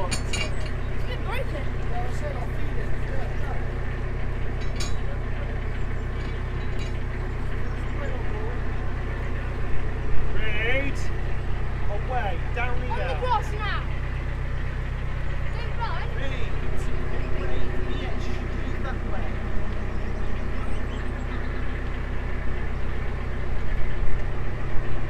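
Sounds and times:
diesel engine idling: 0.0s - 25.0s
voices calling: 0.0s - 25.0s.

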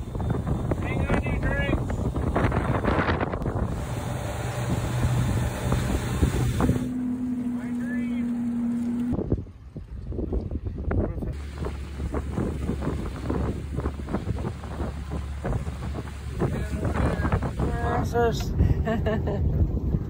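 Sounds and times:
wind rushing on microphone: 0.0s - 7.0s, 9.1s - 20.0s
steady hum: 0.0s - 9.3s
boat motor: 0.0s - 20.0s
water noise: 0.0s - 20.0s.

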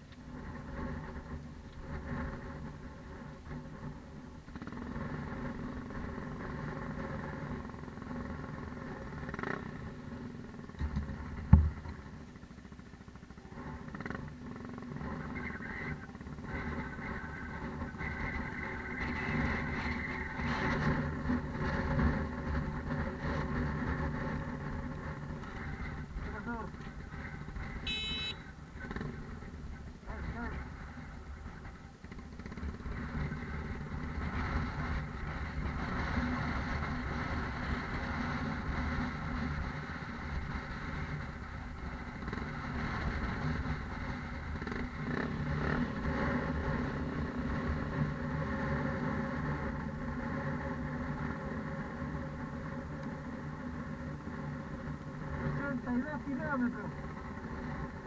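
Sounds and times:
motorcycle engine idling: 0.1s - 58.0s.

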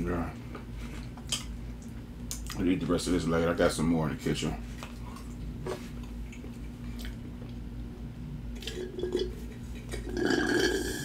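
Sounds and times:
faint steady hum: 0.0s - 11.0s
chewing and mouth sounds: 1.0s - 2.6s, 4.7s - 7.7s.

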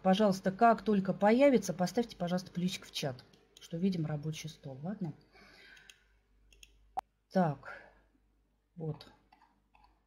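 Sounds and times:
computer mouse clicks: 5.0s - 6.8s.

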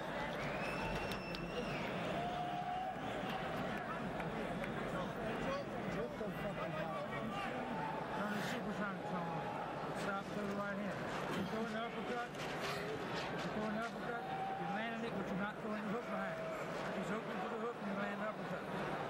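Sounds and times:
arena crowd noise: 0.0s - 19.0s
men talking: 3.7s - 12.4s.

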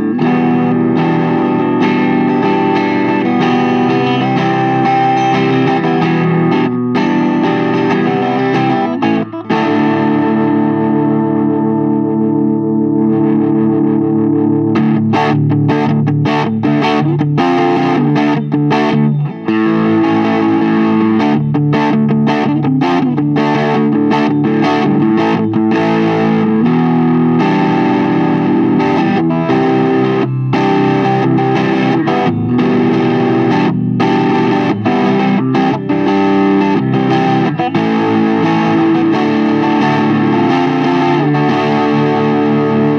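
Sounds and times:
overdriven electric guitar: 0.0s - 42.9s.

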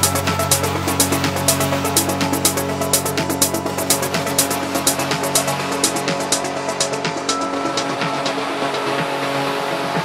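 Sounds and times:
electronic percussion beat: 0.0s - 10.0s
held synth chords: 0.0s - 10.0s.

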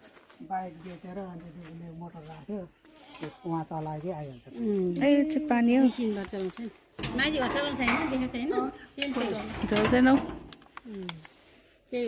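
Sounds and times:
metal sheet scraping on concrete: 7.0s - 10.6s.

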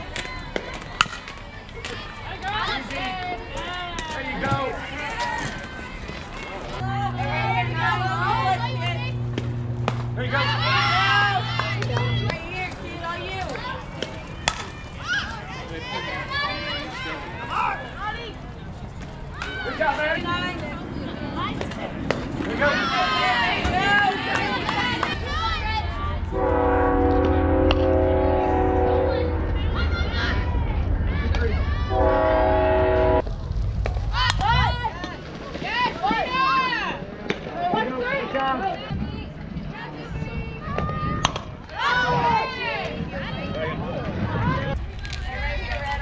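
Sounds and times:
crowd yelling and cheering: 0.0s - 46.0s
low steady hum: 6.5s - 15.2s, 20.3s - 35.1s
horn chord: 26.3s - 29.4s.

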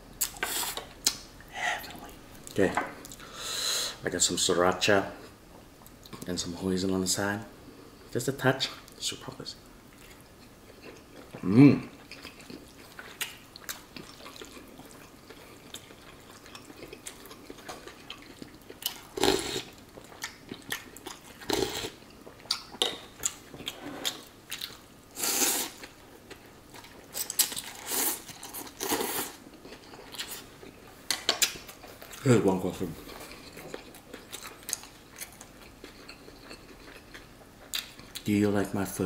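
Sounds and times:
wet chewing: 12.0s - 24.8s, 33.0s - 38.3s
slurping noodles and broth: 19.2s - 19.7s, 25.2s - 25.8s.

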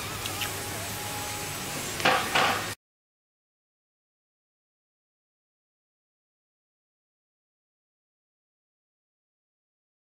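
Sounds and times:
room hiss: 0.0s - 2.8s.

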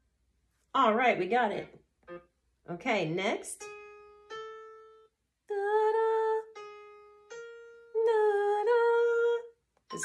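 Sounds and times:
piano notes: 3.5s - 5.1s, 5.9s - 9.2s.

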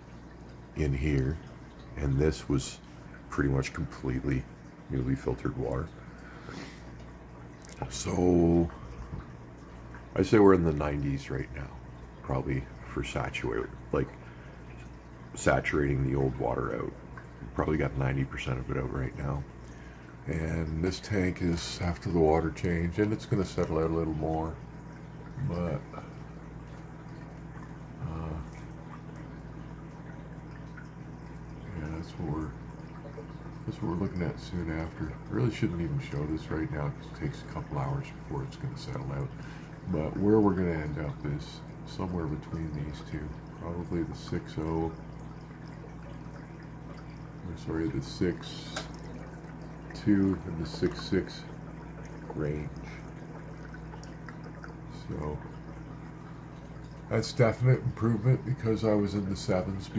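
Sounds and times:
aquarium bubbling: 0.0s - 59.9s
low steady hum: 0.0s - 59.9s.

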